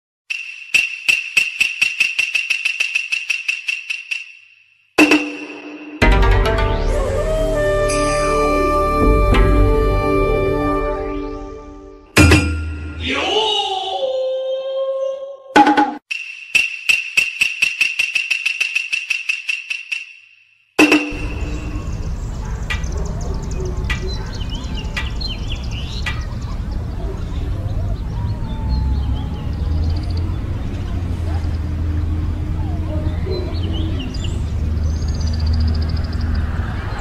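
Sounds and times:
sharp percussive clacks: 0.3s - 6.2s, 15.6s - 21.6s
metallic object struck rapidly: 0.3s - 6.3s, 12.2s - 13.1s, 15.6s - 20.2s, 20.8s - 22.0s
high steady ring: 12.2s - 13.0s, 16.1s - 21.9s.

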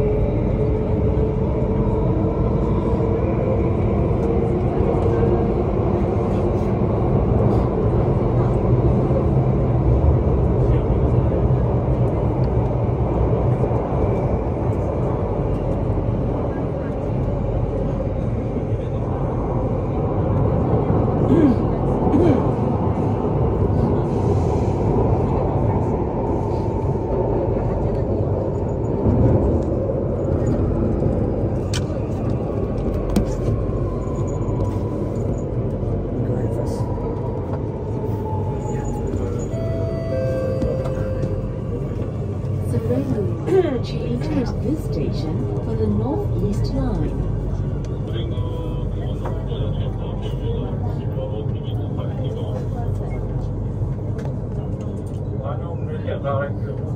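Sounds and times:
train wheels rumbling on rail: 0.0s - 56.9s
train whine sliding down: 37.4s - 43.4s.

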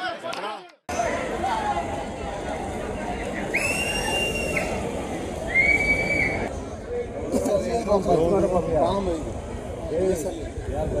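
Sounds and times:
murmur of people outdoors: 0.0s - 11.0s
high steady whistle: 3.5s - 4.8s, 5.5s - 6.5s.

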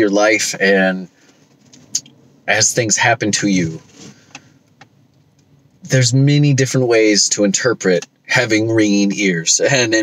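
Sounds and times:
man talking: 0.0s - 1.2s, 2.0s - 3.9s, 5.8s - 10.0s.

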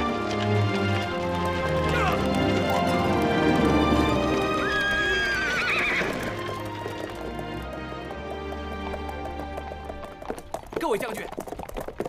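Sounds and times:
background music sustained notes: 0.0s - 10.7s
hooves clopping: 0.0s - 12.0s
horse whinnying: 1.7s - 6.9s.

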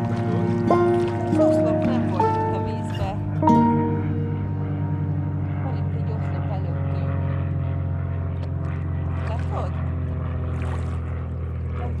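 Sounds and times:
boat motor humming: 0.0s - 12.0s.

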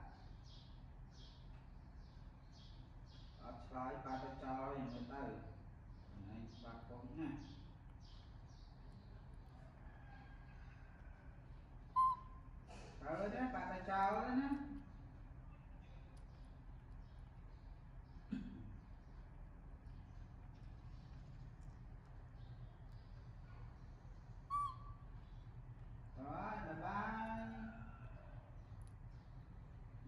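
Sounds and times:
faint low room hum: 0.0s - 30.0s
baby monkey squeak: 12.0s - 12.4s, 24.5s - 25.1s.

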